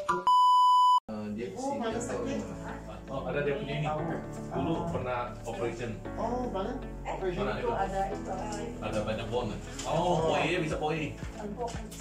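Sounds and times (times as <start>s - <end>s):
high electronic censor bleep: 0.2s - 1.0s
people talking: 1.1s - 12.0s.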